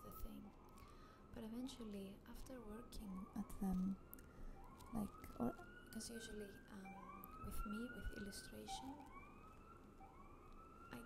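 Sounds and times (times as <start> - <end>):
faint rising siren: 0.0 - 11.0.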